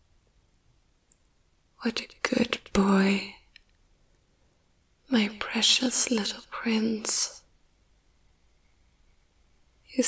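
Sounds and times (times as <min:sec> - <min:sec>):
woman's soft voice: 0:01.8 - 0:03.5, 0:05.0 - 0:07.5.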